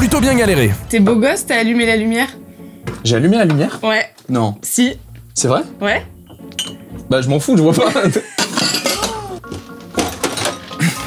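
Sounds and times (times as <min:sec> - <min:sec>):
background music: 0:00.0 - 0:11.0
kitchen utensils clicking and knocking: 0:08.2 - 0:11.0.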